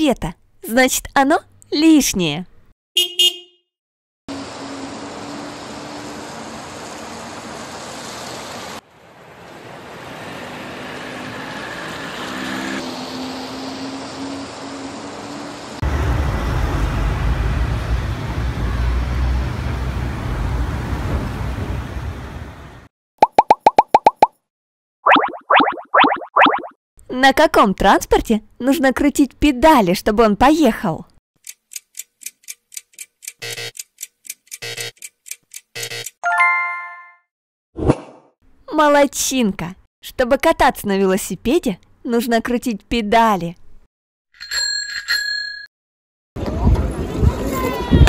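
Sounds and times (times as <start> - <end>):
distant car horns: 3.0 - 3.7
traffic hum: 4.3 - 22.9.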